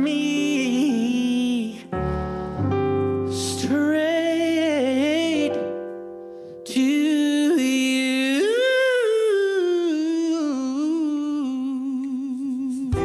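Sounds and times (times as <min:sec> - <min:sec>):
man singing unaccompanied: 0:00.0 - 0:02.7, 0:03.3 - 0:05.8, 0:06.7 - 0:13.0.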